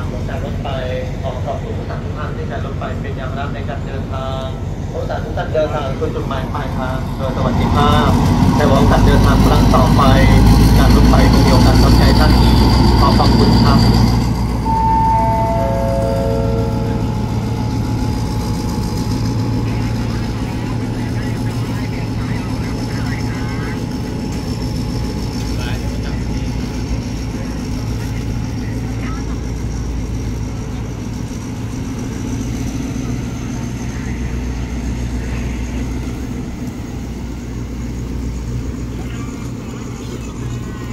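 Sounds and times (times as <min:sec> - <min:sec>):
locomotive engine rumble: 0:00.0 - 0:40.9
faint high whine: 0:12.2 - 0:29.5
descending pa chime: 0:14.6 - 0:19.7.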